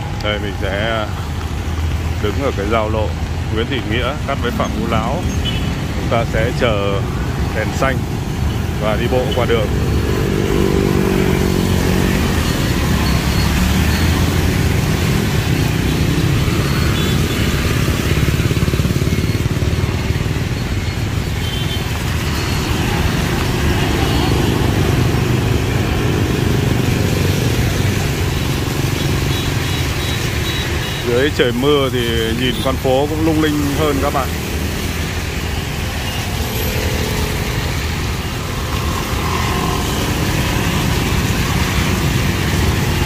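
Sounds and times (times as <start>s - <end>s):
motorbikes and cars passing: 0.0s - 43.0s.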